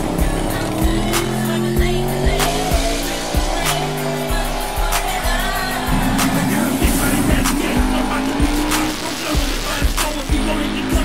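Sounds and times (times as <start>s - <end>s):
engine revving: 0.0s - 11.0s
music with steady beat: 0.0s - 11.0s.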